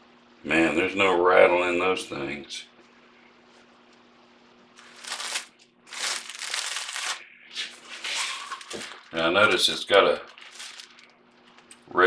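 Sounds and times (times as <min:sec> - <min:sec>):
faint steady hum: 0:00.0 - 0:12.0
rustling handling noise: 0:04.8 - 0:11.9.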